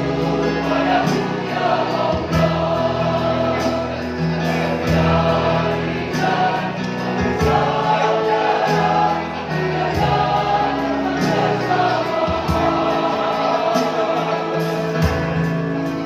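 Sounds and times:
mixed choir singing chords: 0.0 - 16.0.

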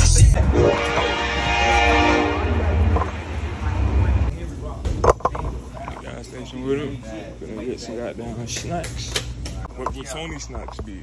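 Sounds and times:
low rumble: 0.0 - 4.6
long horn blast: 0.3 - 4.3.

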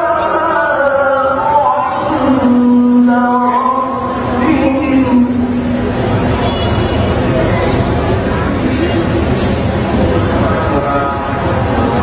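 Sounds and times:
indistinct voices: 0.0 - 12.0
rough rumble of hall noise: 0.0 - 12.0.

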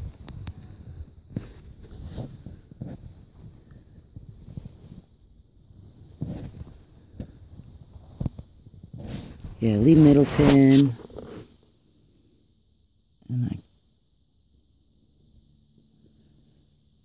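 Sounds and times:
fabric rustles: 8.9 - 11.6.

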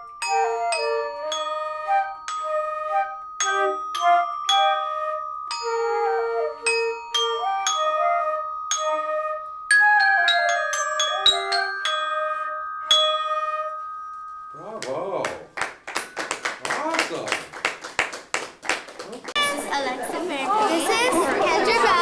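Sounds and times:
flutes playing held notes: 0.0 - 15.3
glockenspiel melody: 0.0 - 17.0
people clapping: 14.6 - 20.2.

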